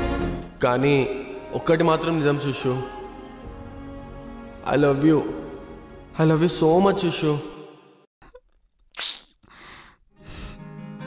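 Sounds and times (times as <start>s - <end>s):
woman's crying breath: 9.4s - 10.7s.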